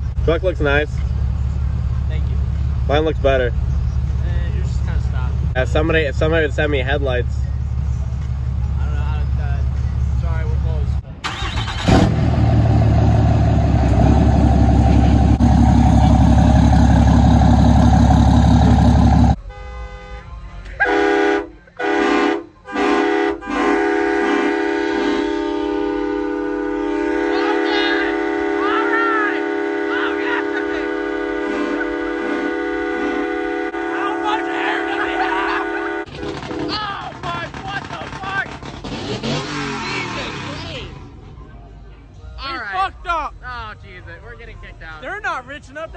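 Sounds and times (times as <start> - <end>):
loud deep dense sound: 11.8 - 19.4
truck air horn blasts: 18.6 - 36.8.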